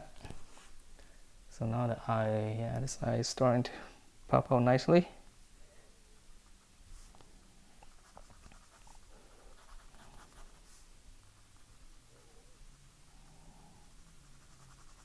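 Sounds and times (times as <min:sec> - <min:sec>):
pencil scratching on paper: 0:14.0 - 0:15.0.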